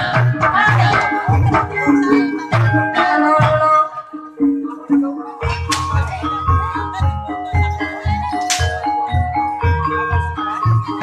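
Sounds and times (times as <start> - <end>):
struck keyed instruments melody: 0.0 - 11.0.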